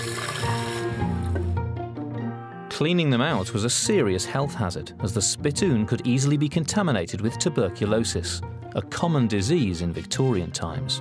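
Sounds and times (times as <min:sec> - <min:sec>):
liquid pouring and sloshing: 0:00.0 - 0:01.6
background music with held notes: 0:00.0 - 0:11.0.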